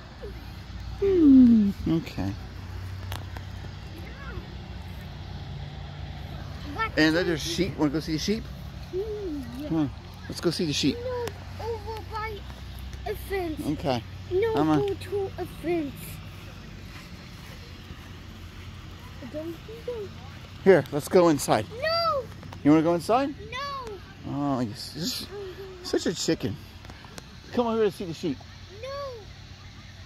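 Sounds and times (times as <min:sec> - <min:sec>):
low mechanical hum: 0:00.0 - 0:30.0.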